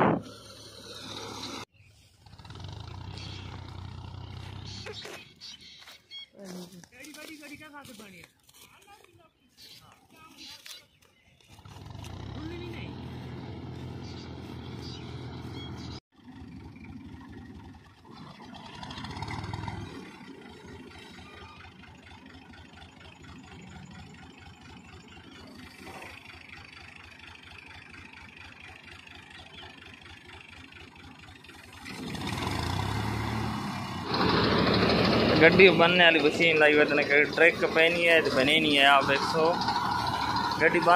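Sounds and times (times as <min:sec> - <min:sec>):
tractor engine running: 0:00.0 - 0:09.2, 0:10.0 - 0:40.9
reaper cutting crop: 0:00.0 - 0:16.0, 0:31.4 - 0:40.9.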